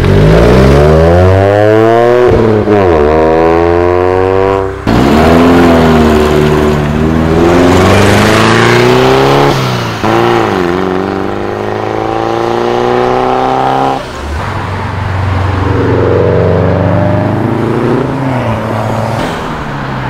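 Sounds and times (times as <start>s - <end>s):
car engine accelerating: 0.0s - 14.2s, 14.8s - 19.6s.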